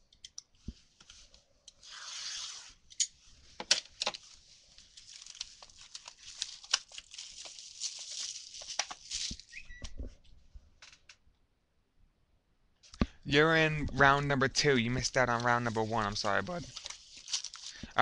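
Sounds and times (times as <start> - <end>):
plastic crinkling and snapping: 3.7 - 9.6, 16.5 - 18.0
shrink wrap ripping: 4.8 - 9.6, 15.2 - 17.8.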